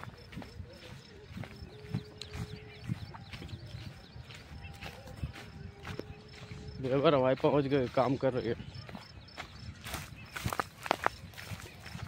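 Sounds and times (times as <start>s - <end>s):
footsteps on dry ground: 0.0s - 12.0s.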